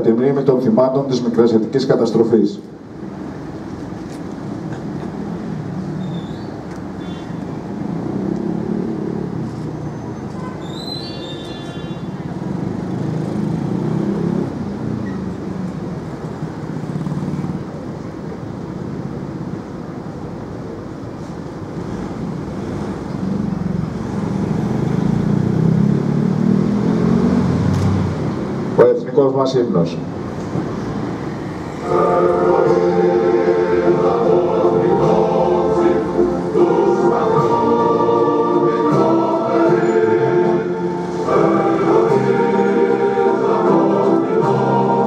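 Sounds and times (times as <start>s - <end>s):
passing cars and motorbikes: 2.7s - 45.0s.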